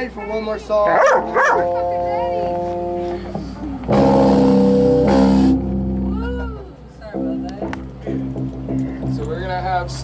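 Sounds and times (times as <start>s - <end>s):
electric guitar chords: 1.0s - 9.2s.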